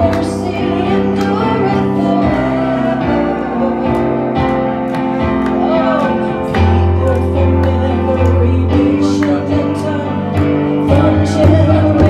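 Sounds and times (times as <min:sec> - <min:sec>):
woman singing: 0:00.0 - 0:04.4, 0:05.6 - 0:12.0
electric keyboard: 0:00.0 - 0:12.0.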